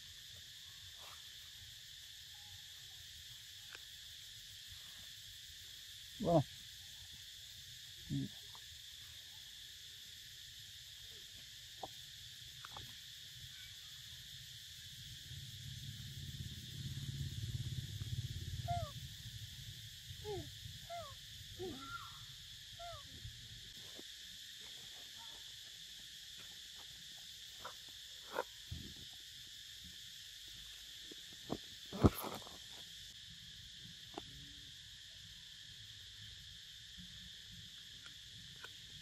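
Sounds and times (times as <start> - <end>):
insects droning: 0.0 - 39.0.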